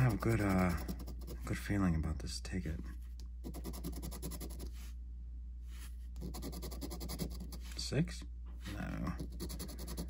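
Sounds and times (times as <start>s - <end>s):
coin scratching lottery ticket: 0.0s - 1.5s, 3.4s - 4.7s, 6.2s - 7.6s, 9.2s - 10.0s.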